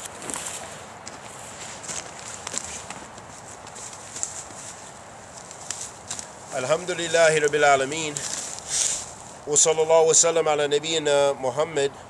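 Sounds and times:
footsteps on forest floor: 0:00.0 - 0:09.5.

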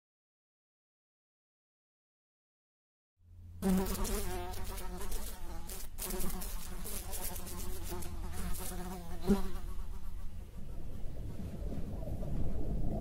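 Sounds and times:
low rumbling noise: 0:03.2 - 0:03.7, 0:09.7 - 0:13.0.

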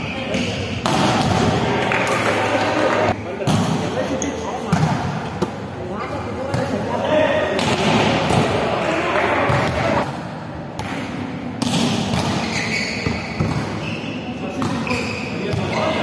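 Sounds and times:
players' voices: 0:00.0 - 0:10.2, 0:12.5 - 0:16.0
volleyballs being hit and bouncing: 0:00.3 - 0:04.0, 0:07.5 - 0:13.8.

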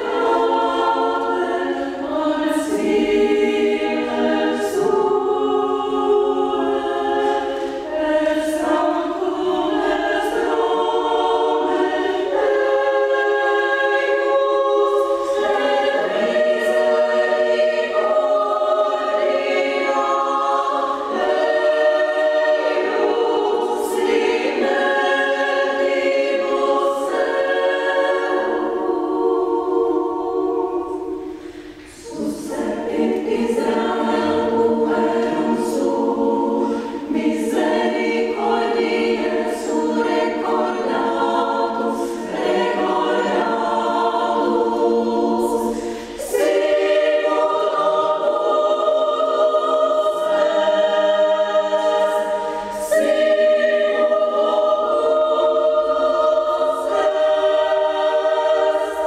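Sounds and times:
women's choir singing a cappella: 0:00.0 - 0:59.0.

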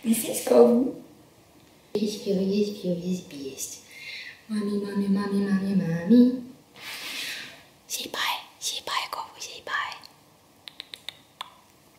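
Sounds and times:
woman whispering: 0:07.9 - 0:10.1.

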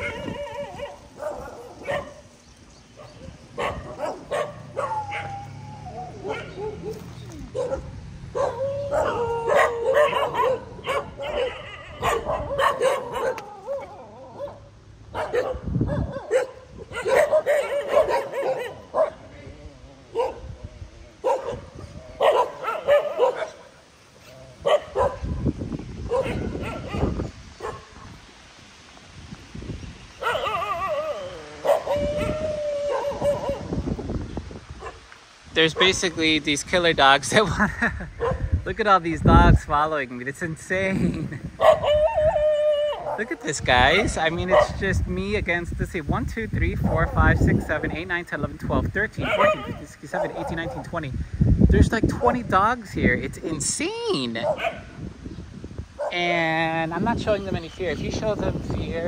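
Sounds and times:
dogs barking and yelping: 0:00.0 - 0:28.2, 0:30.2 - 0:34.0, 0:34.8 - 0:35.1, 0:38.0 - 0:38.6, 0:41.5 - 0:44.8, 0:49.2 - 0:50.9, 0:54.2 - 0:55.0, 0:56.0 - 0:56.2.

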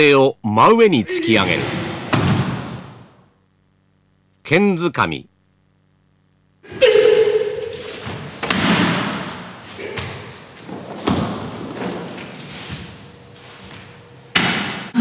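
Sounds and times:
person shouting: 0:01.0 - 0:01.7, 0:06.6 - 0:07.7
body thudding on mat: 0:10.0 - 0:12.4.

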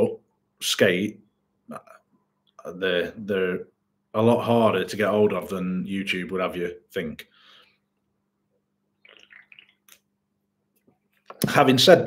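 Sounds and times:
man gulping a drink: 0:08.9 - 0:10.2.

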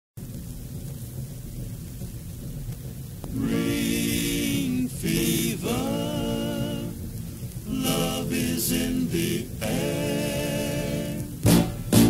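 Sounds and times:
vinyl surface noise and rumble: 0:00.2 - 0:12.0
song music: 0:03.4 - 0:12.0.

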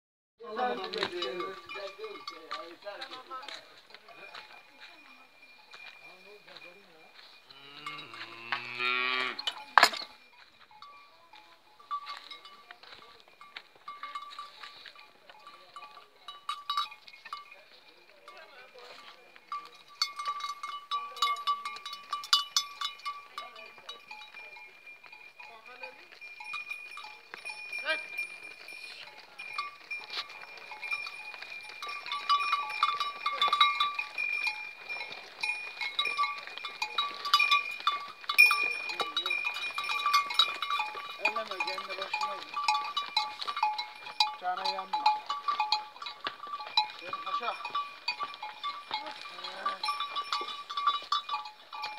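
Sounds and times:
metal livestock bells clanking: 0:00.4 - 0:51.9.

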